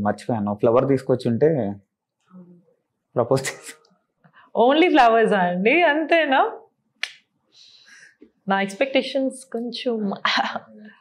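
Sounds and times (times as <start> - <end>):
person speaking: 3.2 - 3.9
finger snap: 7.0 - 7.3
faint breathy hiss: 7.4 - 8.4.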